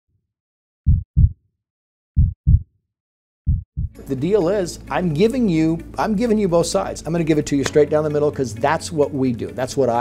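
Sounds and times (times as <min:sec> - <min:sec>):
heartbeat double thumps: 0:00.8 - 0:01.4, 0:02.2 - 0:02.7, 0:03.4 - 0:04.0.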